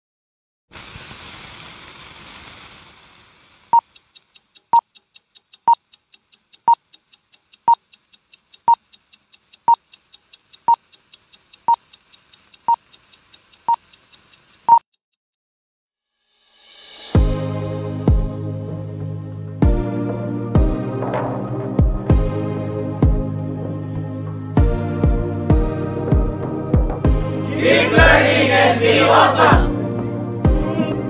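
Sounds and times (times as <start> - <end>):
hiss: 0.7 - 5.6, 6.2 - 14.8, 16.2 - 17.4
fast faint ticking: 3.7 - 14.9
short high beeps: 14.6 - 14.8.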